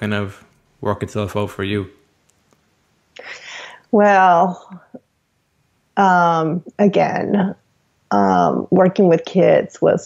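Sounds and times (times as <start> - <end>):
woman breathing: 3.2 - 4.0
woman speaking: 3.2 - 5.0, 6.0 - 10.0.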